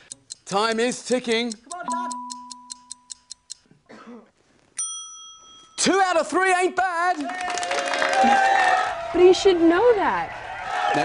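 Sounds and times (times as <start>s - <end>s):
countdown clock ticking: 0.0s - 3.7s
bright bell ding: 1.9s - 2.8s, 4.8s - 6.0s.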